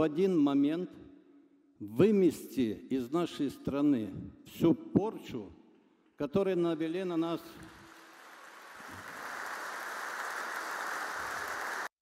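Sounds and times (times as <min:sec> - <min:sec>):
audience applause: 0:07.6 - 0:12.0.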